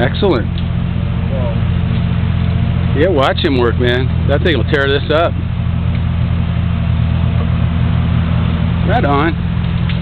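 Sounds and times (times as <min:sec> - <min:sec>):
excavator engine running: 0:00.0 - 0:10.0.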